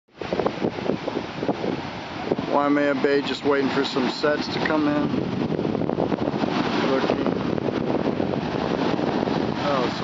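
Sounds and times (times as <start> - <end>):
heavy surf on beach: 0.1 - 10.0
wind buffeting microphone: 0.1 - 10.0.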